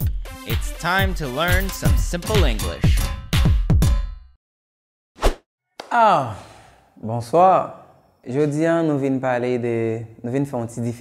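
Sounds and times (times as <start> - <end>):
intro music: 0.0 - 4.0.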